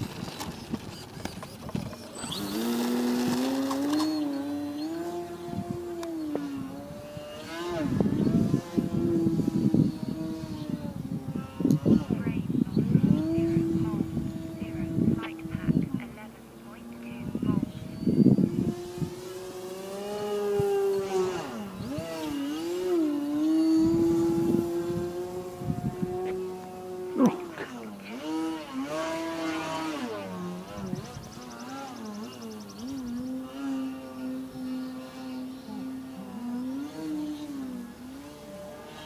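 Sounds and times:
model plane motor droning: 0.0s - 39.0s.

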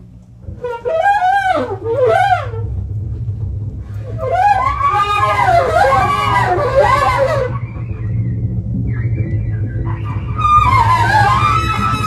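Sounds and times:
bass rumble: 0.0s - 12.0s
trumpet playing wavering lines: 4.0s - 12.0s.

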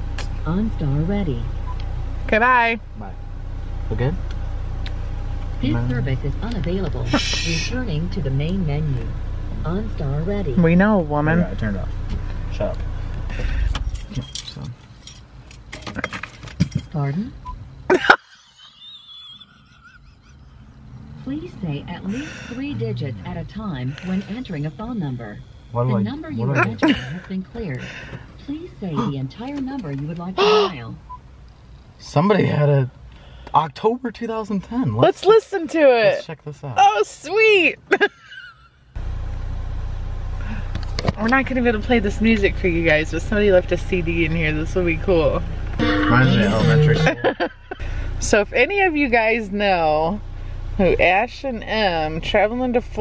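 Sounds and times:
car engine idling: 0.0s - 53.0s
car keys jangling: 13.4s - 17.1s.

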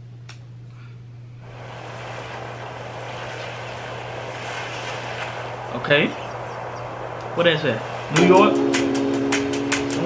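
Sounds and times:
low electrical hum: 0.0s - 10.0s
steady rushing noise: 1.4s - 10.0s.

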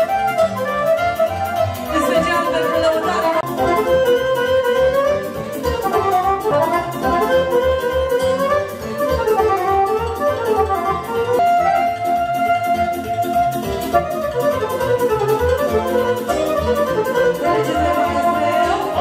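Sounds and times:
digital accordion dance music: 0.1s - 12.2s, 12.8s - 19.0s.

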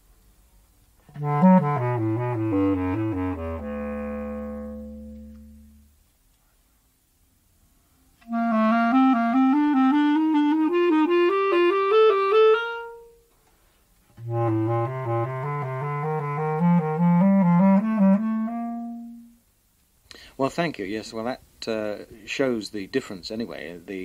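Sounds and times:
basset horn rising scale: 1.1s - 5.8s, 8.3s - 13.1s, 14.2s - 19.3s
bass clarinet rising scale: 1.1s - 5.9s, 8.2s - 13.2s, 14.2s - 19.4s.

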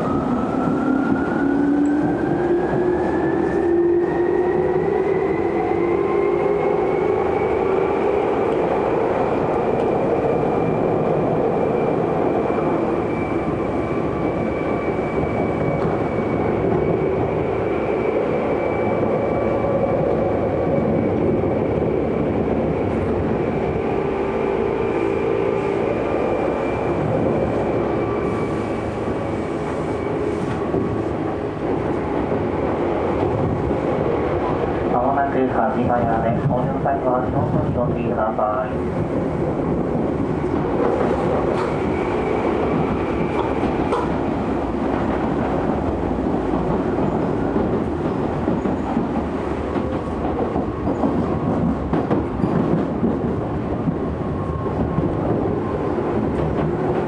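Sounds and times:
train car running noise: 0.0s - 57.0s.

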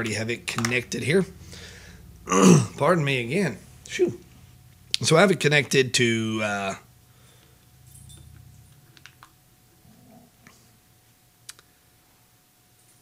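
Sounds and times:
low hum: 0.0s - 12.3s
faint steady tone: 0.0s - 13.0s.

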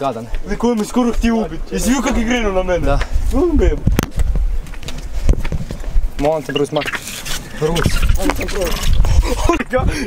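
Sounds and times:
low rumbling on phone microphone: 7.4s - 10.0s.

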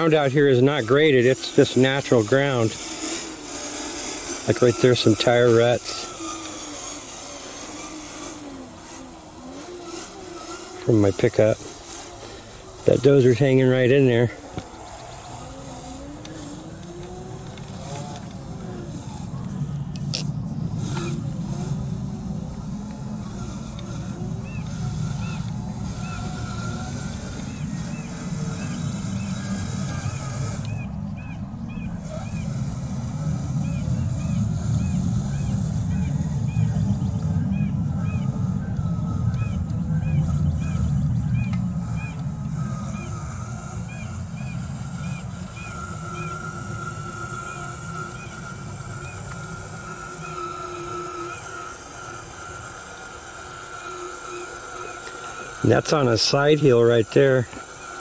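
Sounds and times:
toy truck electric motor whining: 0.0s - 58.0s
low rumble: 15.4s - 50.3s.

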